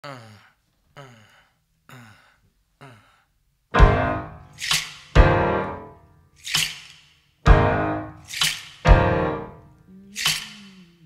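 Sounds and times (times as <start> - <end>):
man grunting count-in: 0.0 - 3.2, 9.8 - 11.0.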